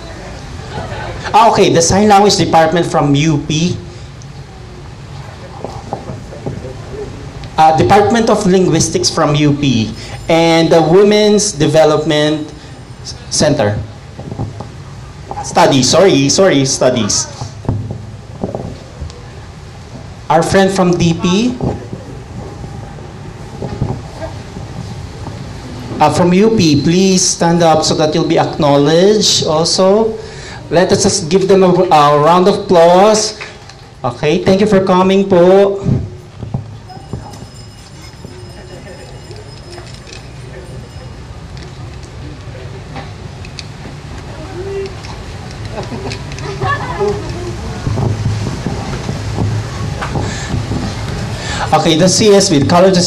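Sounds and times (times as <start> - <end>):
faint audience sounds: 0.0 - 53.0
low background rumble and hiss: 0.0 - 53.0
wind rumble on microphone: 21.0 - 26.3, 46.2 - 52.0.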